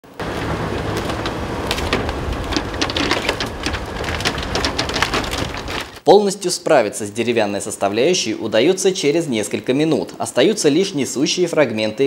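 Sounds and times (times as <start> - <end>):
excavator engine rumble: 0.0 - 6.0
timber cracking and splintering: 0.0 - 6.0
debris clattering down: 0.1 - 6.0.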